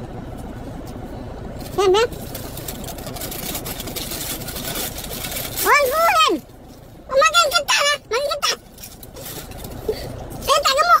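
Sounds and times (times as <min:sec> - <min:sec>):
low car engine hum: 0:00.0 - 0:11.0.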